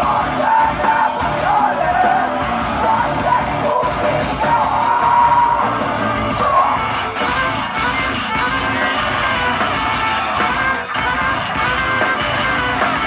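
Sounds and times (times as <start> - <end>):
bass: 0.0 - 13.0
distorted electric guitars: 0.0 - 13.0
drums: 0.0 - 13.0.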